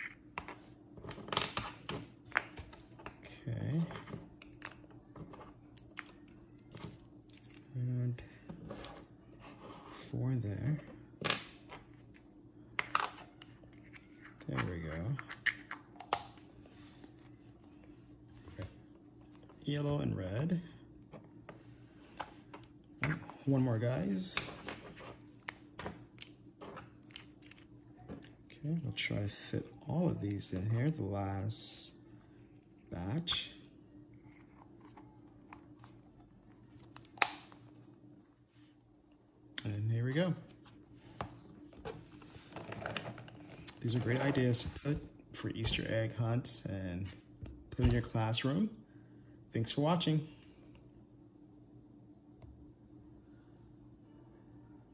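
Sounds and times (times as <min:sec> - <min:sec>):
faint steady hum: 0:00.0 - 0:54.9.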